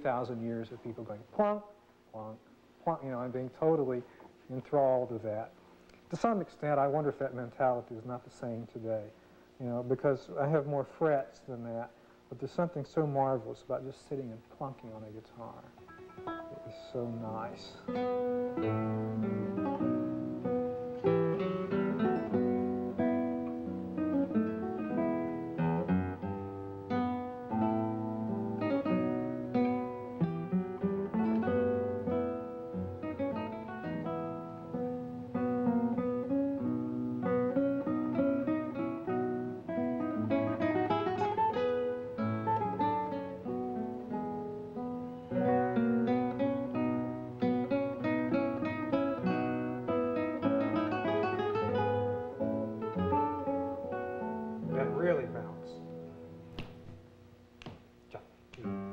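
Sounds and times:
classical guitar fingerstyle: 15.8s - 57.0s, 58.6s - 58.9s.

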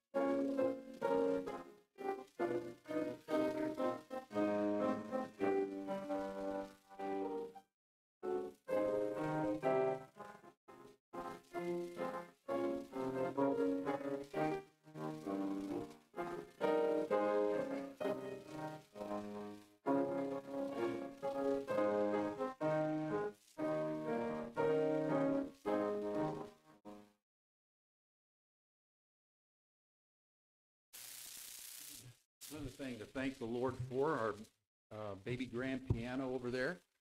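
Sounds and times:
solo piano music: 8.3s - 10.4s, 11.2s - 26.6s.

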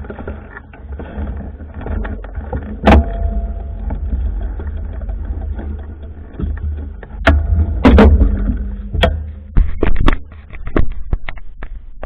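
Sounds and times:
camera handling rumble: 3.9s - 12.0s.

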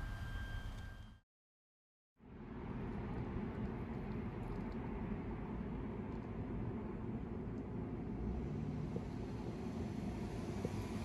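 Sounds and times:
low outdoor rumble: 2.2s - 11.0s.

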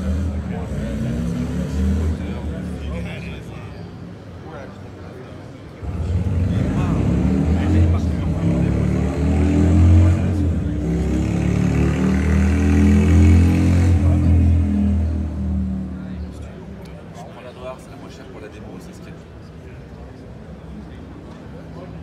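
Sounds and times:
motorcycle engine revving: 0.0s - 3.0s, 5.8s - 16.1s.

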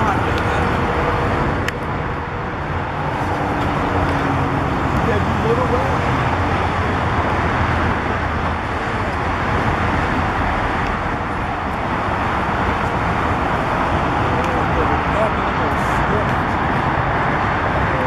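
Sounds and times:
road traffic rushing: 0.0s - 18.0s.

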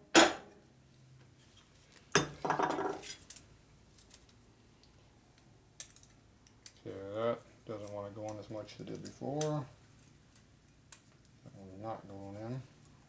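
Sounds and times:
hammer clattering on metal table: 0.2s - 0.5s, 2.2s - 3.2s.

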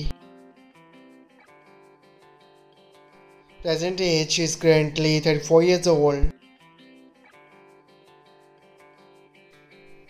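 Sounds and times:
plucked string instrument music: 0.0s - 10.0s.

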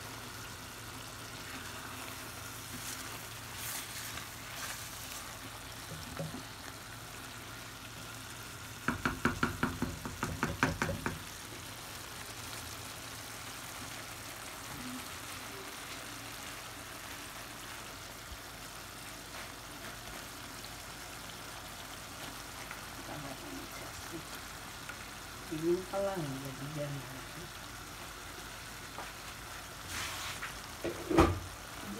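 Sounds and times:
curry sizzling in a pan: 0.0s - 31.9s.

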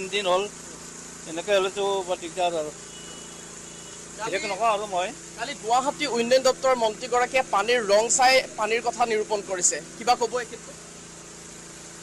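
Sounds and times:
high-pitched hiss: 0.0s - 12.0s
man speaking: 4.2s - 10.8s.

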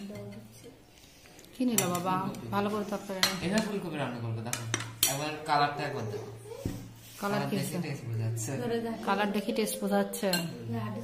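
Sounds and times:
metal spoons clinking on plates: 0.0s - 0.5s, 1.7s - 2.2s, 3.2s - 3.8s, 4.5s - 5.4s, 10.2s - 10.8s.

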